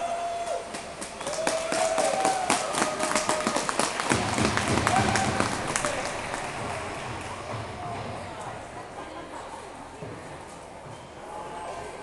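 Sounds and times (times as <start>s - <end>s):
spectators clapping: 0.4s - 8.3s.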